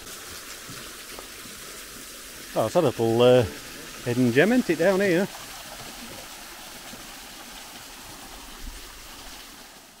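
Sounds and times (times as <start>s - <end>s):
stream of running water: 0.0s - 10.0s.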